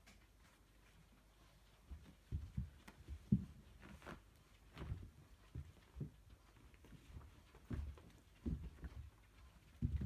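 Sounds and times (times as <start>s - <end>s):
cats scuffling on floor: 0.0s - 10.0s.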